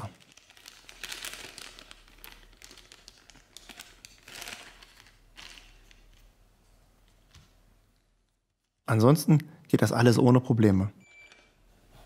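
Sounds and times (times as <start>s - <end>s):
plastic bag crinkling: 0.0s - 8.8s.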